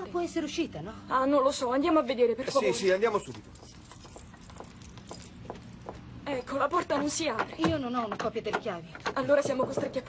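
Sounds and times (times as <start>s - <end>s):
soft footsteps: 2.5s - 10.0s.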